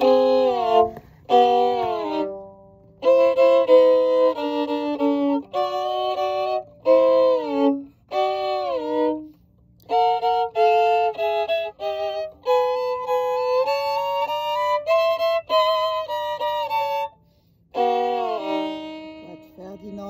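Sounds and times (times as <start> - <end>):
solo violin playing: 0.0 - 20.0.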